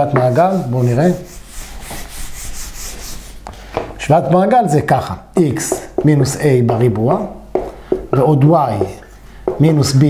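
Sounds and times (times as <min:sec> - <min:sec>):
eraser rubbing on whiteboard: 0:00.0 - 0:03.4.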